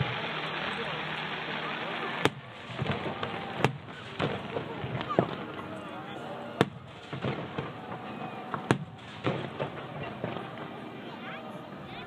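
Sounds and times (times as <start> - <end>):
firework bang: 2.2 - 5.6, 6.6 - 10.8
soft firework booms: 2.2 - 5.6, 6.6 - 10.7.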